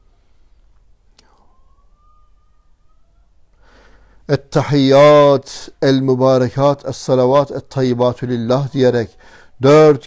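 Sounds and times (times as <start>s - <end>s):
low background hum: 0.0s - 10.0s
short breath-like sound: 3.5s - 4.3s, 9.2s - 9.6s.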